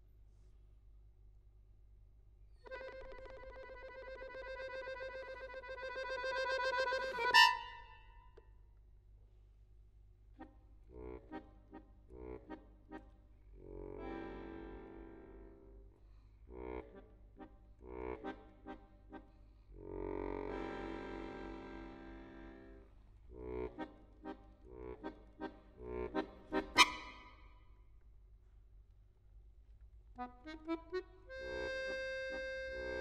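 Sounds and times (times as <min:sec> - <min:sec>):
accordion chords: 0:02.6 - 0:08.0, 0:10.4 - 0:15.8, 0:16.5 - 0:27.3, 0:30.2 - 0:33.0.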